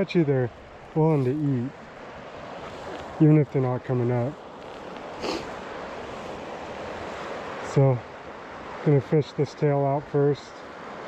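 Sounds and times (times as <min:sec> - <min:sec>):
river water rushing: 0:00.0 - 0:11.0
short hiss: 0:05.2 - 0:05.5.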